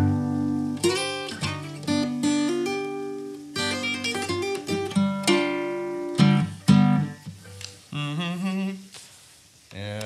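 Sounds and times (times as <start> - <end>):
man humming: 7.9 - 9.0.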